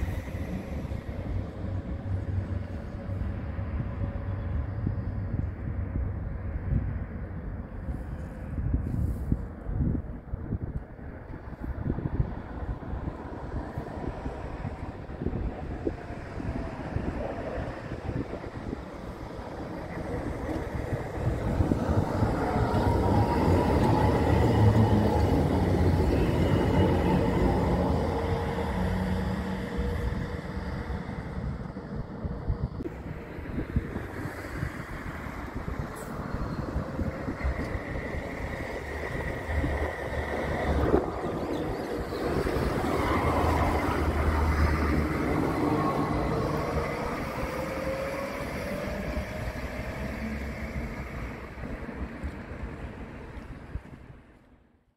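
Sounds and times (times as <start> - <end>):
tram motor whine: 0.0 - 7.6, 11.8 - 53.7
tram rail rumble: 0.0 - 54.8
tram wheel squeal: 19.0 - 32.8, 34.8 - 51.5.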